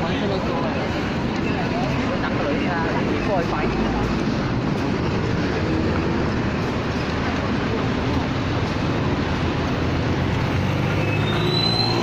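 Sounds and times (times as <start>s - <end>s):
crowd chatter: 0.0s - 12.0s
traffic rumble: 0.0s - 12.0s.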